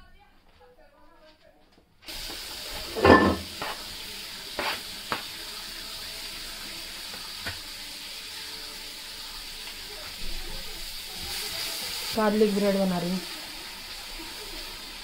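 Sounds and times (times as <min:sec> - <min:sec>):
onions sizzling in hot oil: 0:02.0 - 0:15.0.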